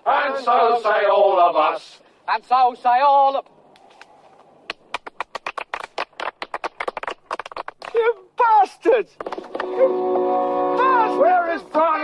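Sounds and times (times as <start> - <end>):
people clapping: 4.7 - 8.1, 9.1 - 9.8.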